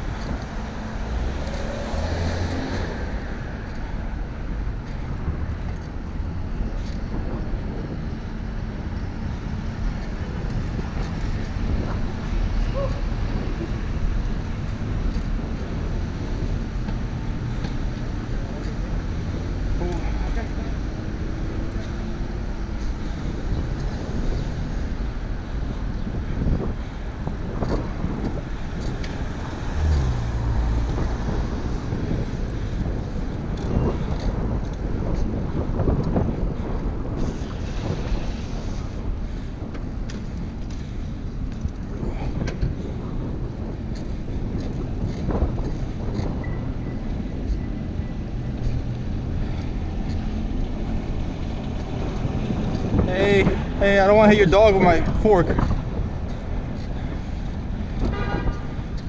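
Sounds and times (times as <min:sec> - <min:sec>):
street traffic rumble: 0:00.0 - 0:59.0
wind rushing over microphone: 0:00.0 - 0:59.0.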